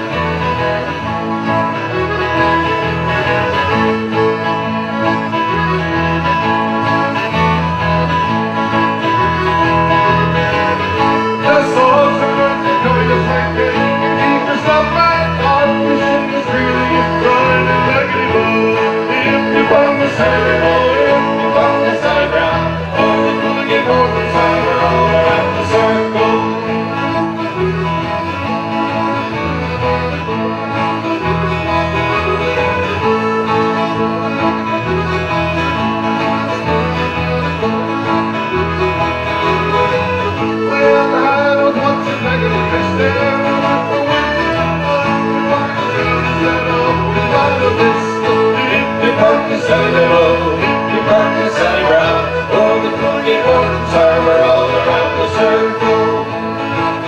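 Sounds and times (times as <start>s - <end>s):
acoustic string band playing: 0.0s - 57.0s.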